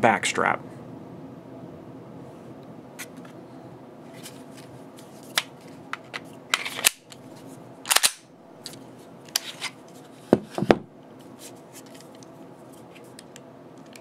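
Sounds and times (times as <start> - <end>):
pistol clicks and clacks: 7.9 - 8.2.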